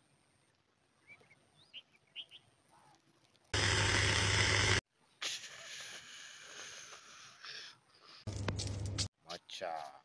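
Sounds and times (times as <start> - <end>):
faint bird chirps: 0.9 - 3.0
loud steady hissing: 3.6 - 4.8.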